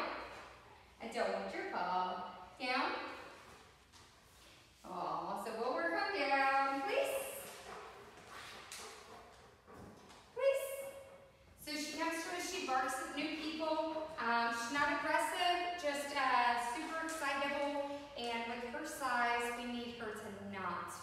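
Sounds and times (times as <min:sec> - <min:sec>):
woman talking: 0:01.0 - 0:03.2, 0:04.8 - 0:07.5, 0:10.4 - 0:11.0, 0:11.6 - 0:21.0.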